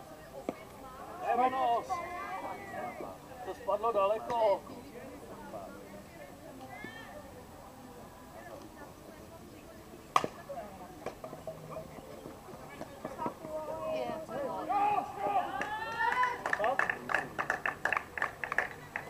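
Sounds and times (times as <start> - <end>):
softball bat hitting ball: 10.1 - 10.4
players shouting: 13.1 - 16.4
people clapping: 15.4 - 19.0.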